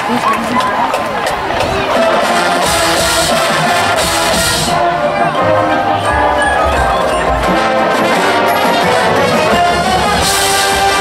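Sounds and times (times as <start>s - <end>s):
stadium crowd noise: 0.0s - 11.0s
marching band chords: 0.8s - 11.0s
low brass: 1.9s - 11.0s.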